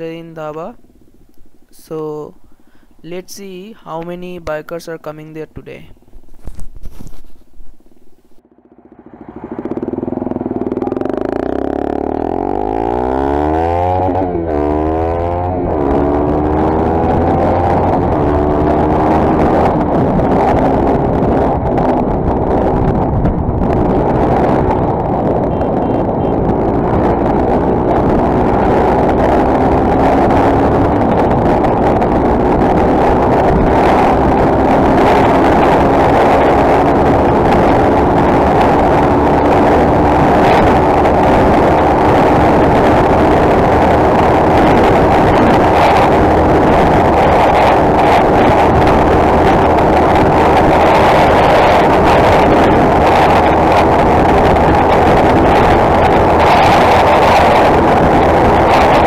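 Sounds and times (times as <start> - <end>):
wind noise: 2.4 - 59.0
motorcycle engine accelerating: 6.0 - 59.0.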